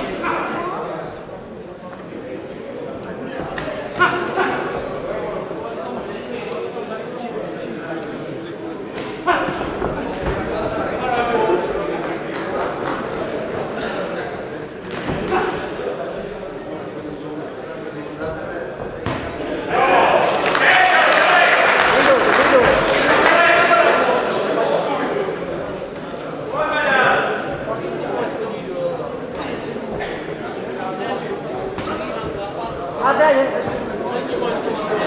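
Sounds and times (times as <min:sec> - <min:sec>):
spectators shouting and talking: 0:00.0 - 0:35.0.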